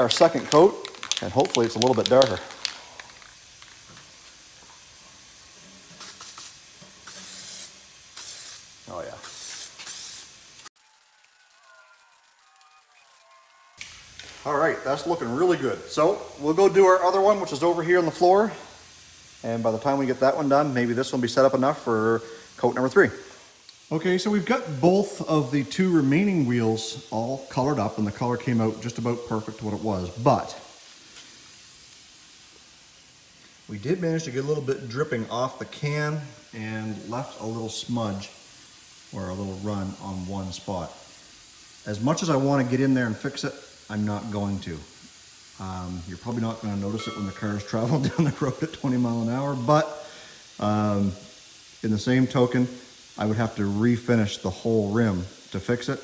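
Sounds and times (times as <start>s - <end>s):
spray can hissing: 0.0s - 56.0s.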